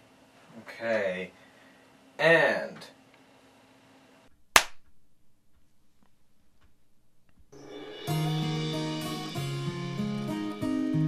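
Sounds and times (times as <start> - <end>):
sharp hand clap: 4.6 - 4.9.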